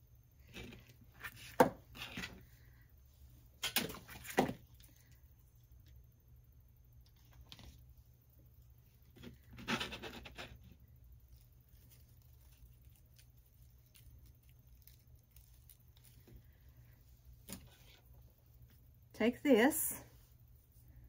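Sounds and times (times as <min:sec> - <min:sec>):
twigs rustling: 0:11.2 - 0:18.1.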